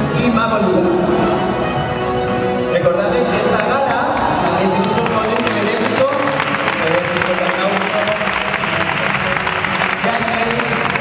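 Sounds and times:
music: 0.0s - 11.0s
audience applauding: 4.2s - 11.0s.

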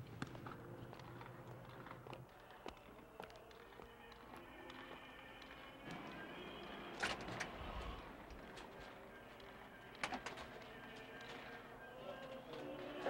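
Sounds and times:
faint city street ambience: 0.0s - 13.0s.

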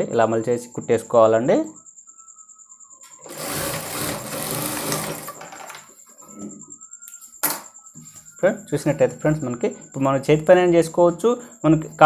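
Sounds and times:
sewing machine running fast: 3.2s - 5.7s.

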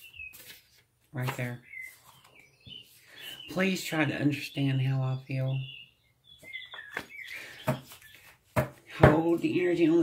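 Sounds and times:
faint high chirp: 0.0s - 0.6s, 1.4s - 3.6s, 5.5s - 8.2s.

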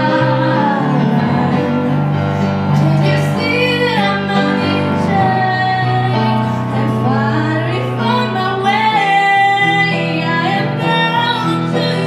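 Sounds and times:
woman singing a pop ballad: 0.0s - 2.0s, 2.8s - 12.0s
piano chords: 0.0s - 12.0s.

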